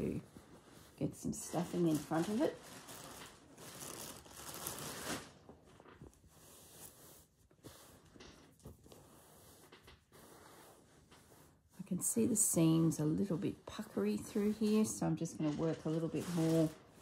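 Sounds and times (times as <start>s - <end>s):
fabric and stuffing rustling: 0.0s - 17.0s.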